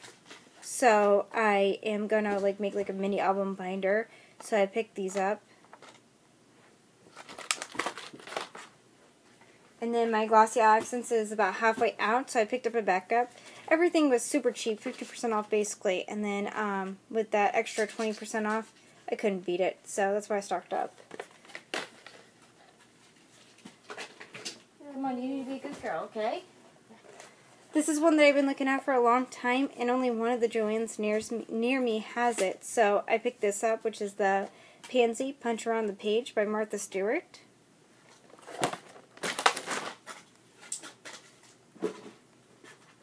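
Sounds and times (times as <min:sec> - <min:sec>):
woman speaking: 0:00.6 - 0:05.4, 0:09.8 - 0:21.0, 0:24.8 - 0:26.6, 0:27.7 - 0:37.5
packaging rustling: 0:07.1 - 0:08.8, 0:20.8 - 0:24.6, 0:38.1 - 0:41.6.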